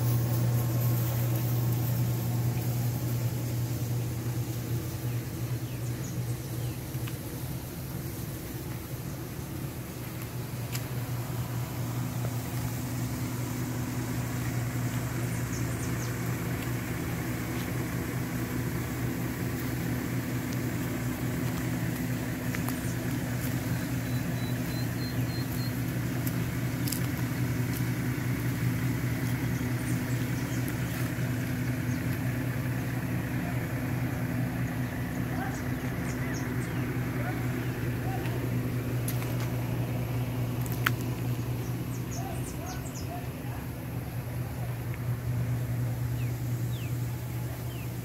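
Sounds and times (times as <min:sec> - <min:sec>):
low mechanical hum: 0:00.0 - 0:48.0.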